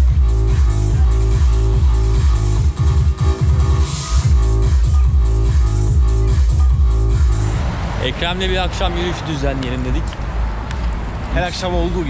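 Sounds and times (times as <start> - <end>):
electronic music with bass beat: 0.0 - 7.7.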